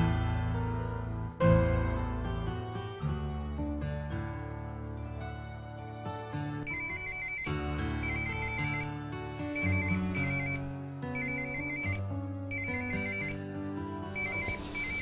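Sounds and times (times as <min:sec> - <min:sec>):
film music with sustained notes: 0:00.0 - 0:15.0
mobile phone ringing: 0:06.7 - 0:13.4, 0:14.1 - 0:15.0.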